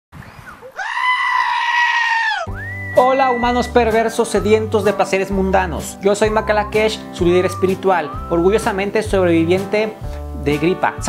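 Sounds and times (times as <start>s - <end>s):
goat screaming bleat: 0.8s - 3.4s.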